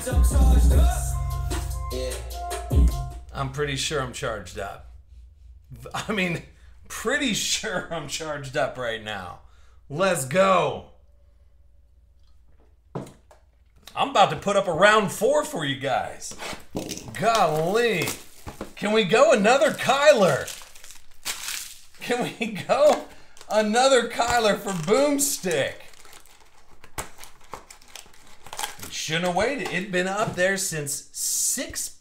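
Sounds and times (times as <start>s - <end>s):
foil packs crinkling: 16.5s - 30.6s.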